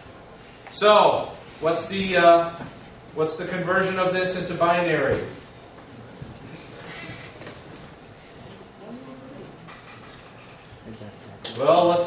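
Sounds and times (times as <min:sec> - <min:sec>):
projector fan hum and hiss: 0:00.0 - 0:12.0.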